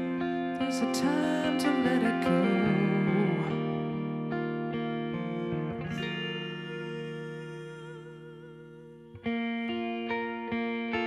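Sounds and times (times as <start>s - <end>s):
electric guitar lead line: 0.0s - 11.0s.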